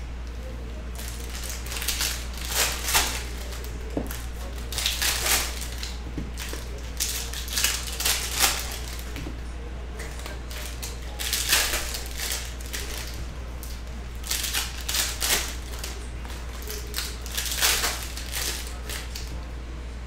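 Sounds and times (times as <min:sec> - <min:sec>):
low steady hum: 0:00.0 - 0:20.0
foil wrapper crinkling and tearing: 0:01.0 - 0:09.2, 0:10.1 - 0:19.3.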